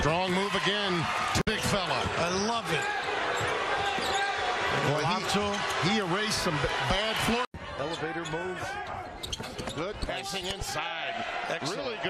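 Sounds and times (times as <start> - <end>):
arena crowd noise: 0.0 - 12.0
basketball court sounds: 8.8 - 10.6.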